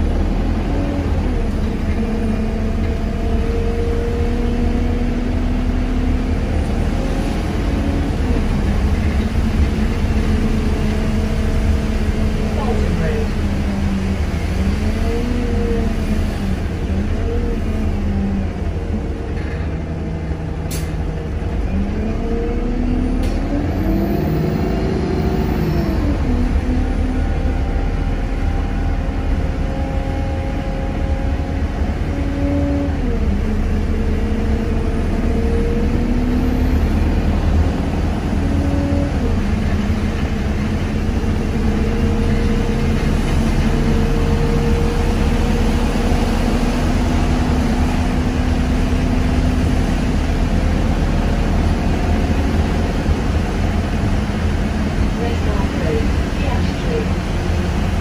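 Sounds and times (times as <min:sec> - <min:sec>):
bus engine rumbling: 0:00.0 - 0:58.0.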